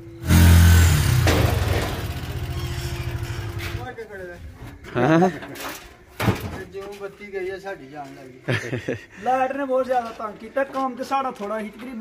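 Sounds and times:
small engine running: 0.0 - 3.8.

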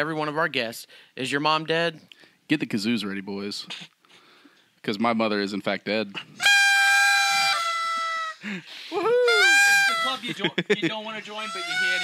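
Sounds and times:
party blowers buzzing: 6.4 - 10.4, 11.2 - 12.0.

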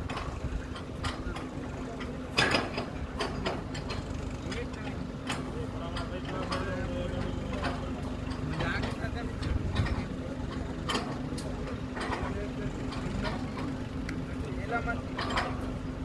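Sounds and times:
drill pipe clanking: 0.0 - 16.0
drilling rig engine running: 0.0 - 16.0.

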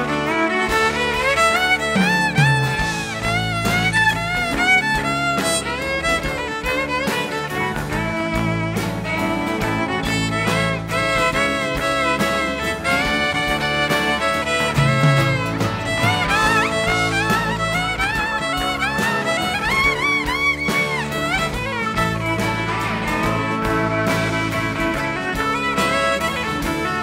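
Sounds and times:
fiddle solo: 0.0 - 27.0
rock band playing: 0.0 - 27.0.

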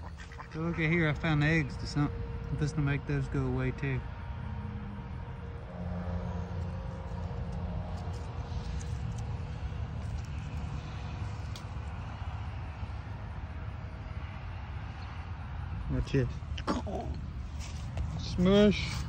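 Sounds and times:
low engine drone: 0.0 - 19.0.

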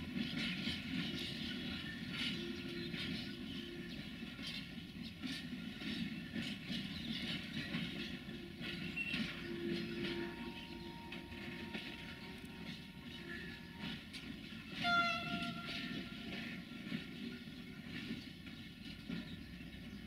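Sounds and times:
freight train rumbling past: 0.0 - 20.0
wheels clicking on track: 0.0 - 20.0.

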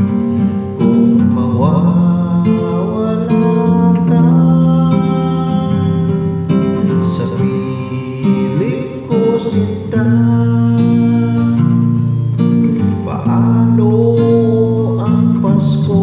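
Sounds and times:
acoustic guitar strumming: 0.0 - 16.0
man singing a ballad: 0.0 - 16.0.

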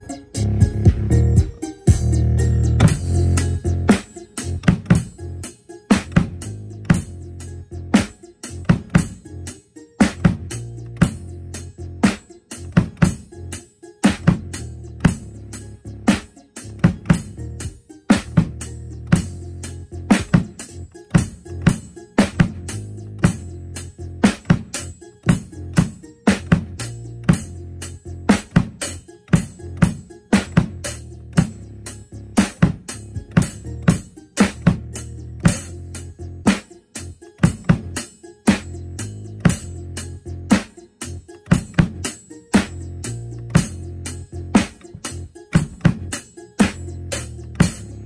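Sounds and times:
backing track bass notes: 0.0 - 48.0
drum kit beat: 0.0 - 48.0.

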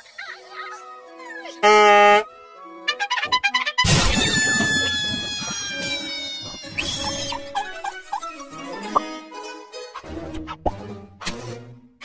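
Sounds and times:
cartoon orchestral music with brass: 1.6 - 12.0.

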